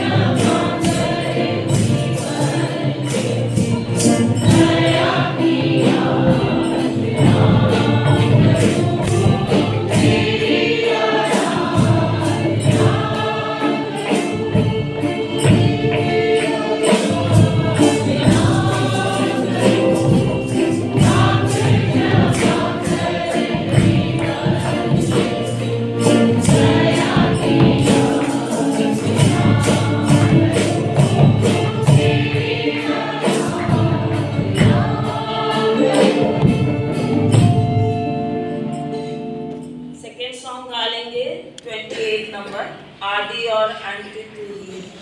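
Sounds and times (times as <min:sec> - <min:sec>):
choir singing in unison: 0:00.0 - 0:38.4
rhythmic percussion beat: 0:00.0 - 0:43.4.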